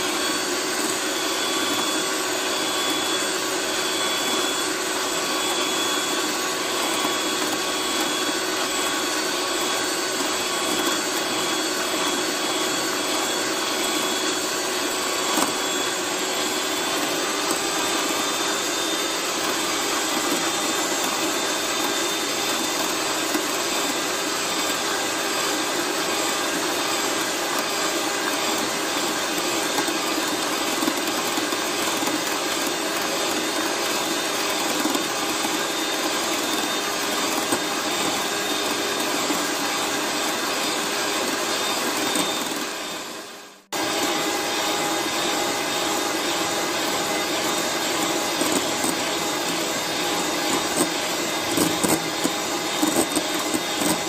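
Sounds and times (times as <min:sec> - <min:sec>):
electric hand mixer running: 0:00.0 - 0:54.0.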